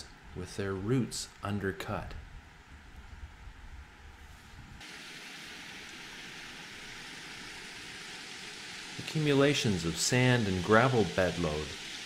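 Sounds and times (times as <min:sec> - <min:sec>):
creek water running: 0:04.8 - 0:12.0.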